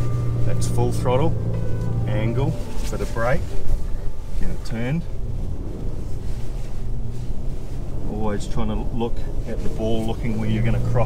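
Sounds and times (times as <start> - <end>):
faint engine hum: 0.0 - 11.0
tyre noise low rumble: 0.0 - 11.0.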